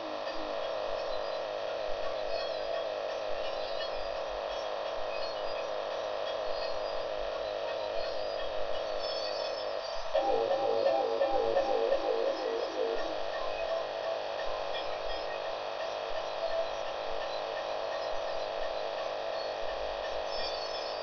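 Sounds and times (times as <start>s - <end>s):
droning synth tone: 9.2s - 14.7s.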